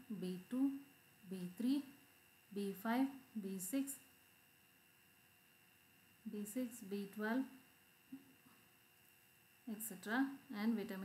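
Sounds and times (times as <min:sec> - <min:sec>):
faint steady tones: 0:00.0 - 0:11.0.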